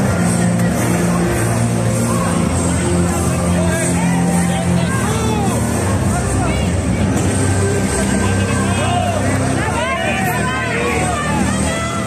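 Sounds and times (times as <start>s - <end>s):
crowd shouting and calling: 0.0s - 12.0s
loud background music: 0.0s - 12.0s.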